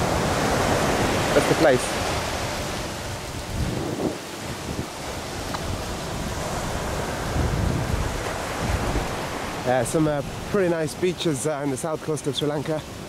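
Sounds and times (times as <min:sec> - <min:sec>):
wind buffeting microphone: 0:00.0 - 0:11.2
ocean surf on beach: 0:00.0 - 0:13.0.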